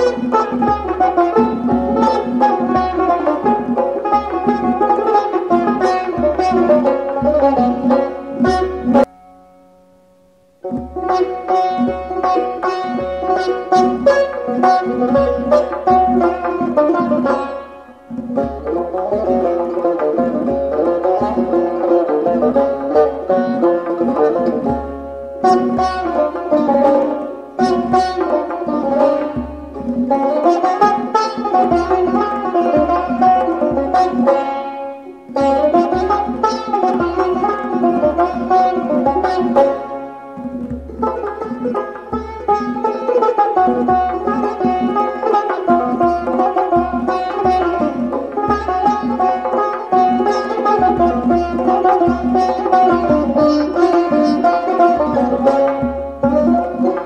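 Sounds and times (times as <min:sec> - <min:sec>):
plucked lute melody: 0:00.0 - 0:57.0
goblet drum strokes: 0:10.6 - 0:57.0.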